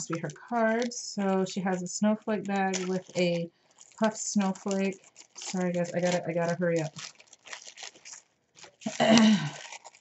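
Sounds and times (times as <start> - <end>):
plastic bag crinkling: 0.0 - 10.0
person clearing throat: 8.9 - 9.6.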